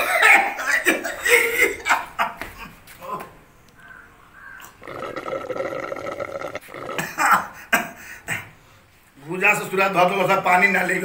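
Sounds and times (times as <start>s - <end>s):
man burping: 4.7s - 7.6s.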